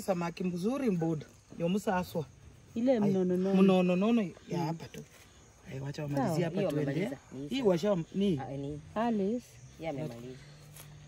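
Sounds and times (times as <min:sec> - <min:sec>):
woman speaking: 0:02.8 - 0:03.5, 0:06.1 - 0:10.5.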